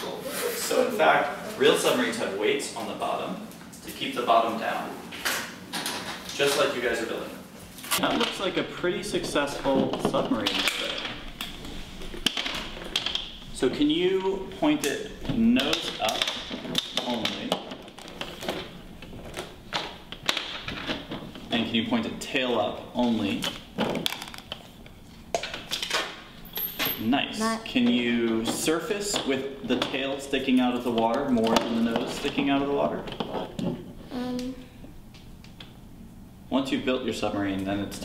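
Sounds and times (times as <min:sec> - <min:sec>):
faint room noise: 0:00.0 - 0:38.0
person humming: 0:34.1 - 0:34.6.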